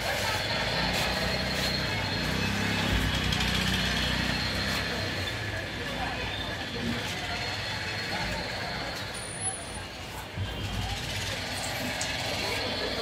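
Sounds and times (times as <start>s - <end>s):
vehicle engines din: 0.0s - 13.0s.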